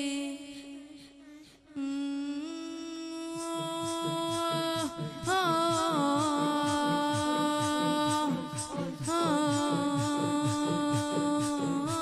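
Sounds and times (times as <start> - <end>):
soft low beat: 2.8 - 12.0.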